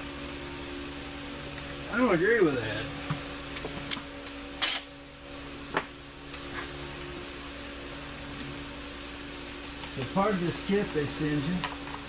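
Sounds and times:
fan humming: 0.0s - 12.0s.

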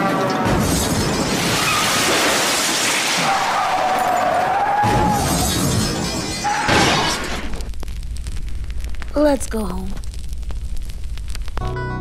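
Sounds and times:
crashing sound effect: 0.4s - 8.4s.

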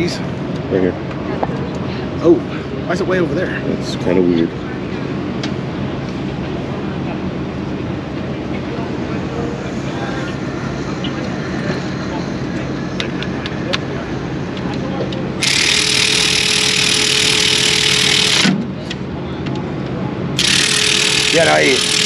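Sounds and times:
steady drone of pit noise: 0.0s - 22.0s
power tool hissing whine: 15.4s - 18.5s, 20.4s - 22.0s.

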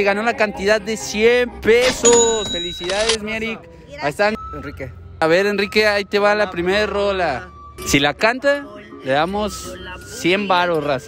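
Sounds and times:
bell-like ding ringing: 1.8s - 3.1s.

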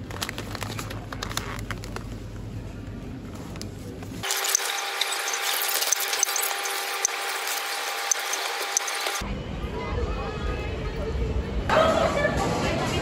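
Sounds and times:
plastic bag crinkling: 0.0s - 2.3s
store background noise: 0.0s - 9.5s.

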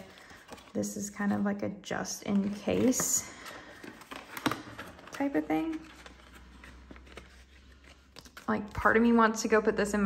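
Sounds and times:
paper banknotes rustling: 2.4s - 9.2s.

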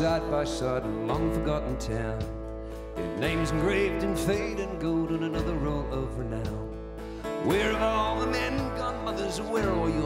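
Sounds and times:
country band with acoustic guitars: 0.0s - 10.0s.

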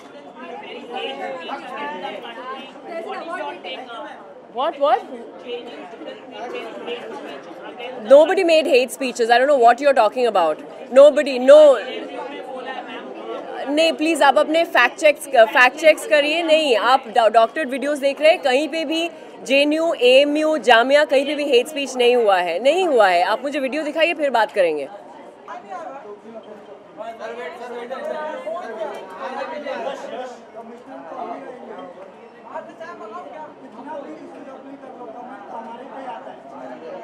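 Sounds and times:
reporters chattering: 0.0s - 37.0s
woman speaking: 8.0s - 11.8s, 13.6s - 24.9s.

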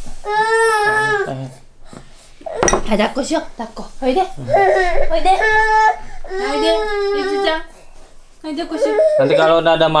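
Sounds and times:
toddler whining cry: 0.2s - 1.5s, 4.4s - 7.7s, 8.6s - 9.6s
mug set down on wooden table: 2.6s - 2.9s.

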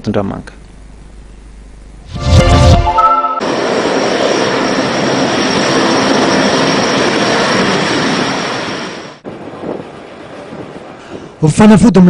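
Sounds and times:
jet engines running: 2.0s - 12.0s.

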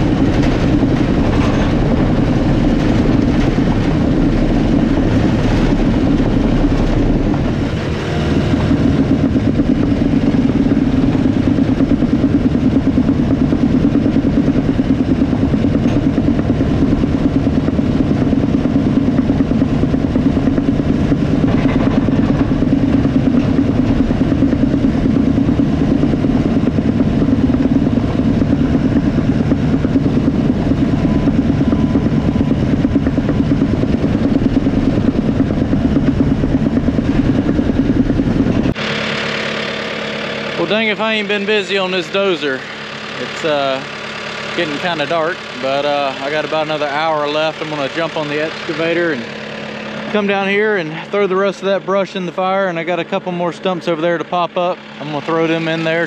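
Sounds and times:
bulldozer diesel engine running: 0.0s - 56.0s.

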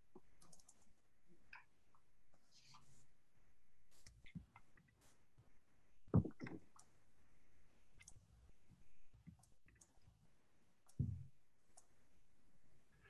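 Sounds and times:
computer mouse clicks: 0.4s - 0.8s, 8.0s - 8.2s, 9.2s - 10.0s, 11.7s - 12.0s.

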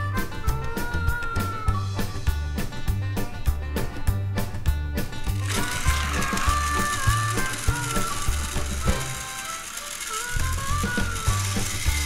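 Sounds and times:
toy train motors whirring: 5.2s - 12.0s.

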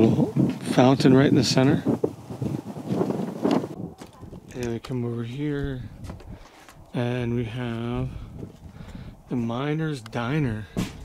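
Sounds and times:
wind gusting across microphone: 0.0s - 11.0s.

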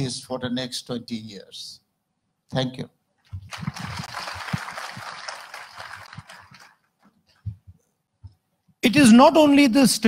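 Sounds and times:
audience applause: 3.5s - 6.9s.

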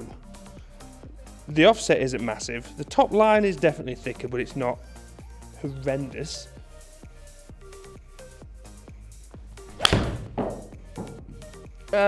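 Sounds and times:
golf club striking ball: 9.7s - 11.4s
ball thudding into screen: 9.8s - 11.2s.

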